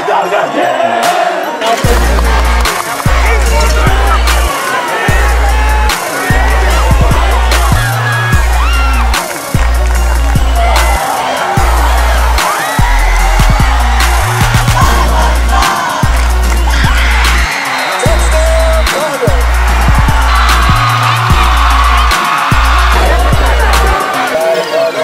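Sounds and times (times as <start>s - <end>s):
vocals over hip-hop beat: 0.0s - 25.0s
heavy bass notes: 1.8s - 4.5s, 5.1s - 11.0s, 11.6s - 17.5s, 18.1s - 24.0s.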